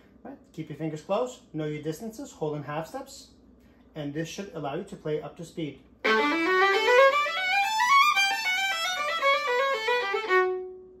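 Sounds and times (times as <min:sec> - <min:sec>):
solo violin playing: 0:06.0 - 0:10.9.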